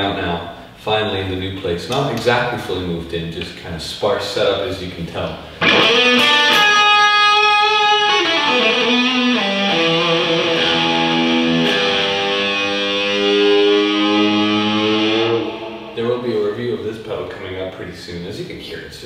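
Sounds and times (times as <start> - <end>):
electric guitar sustained notes: 5.6 - 16.8.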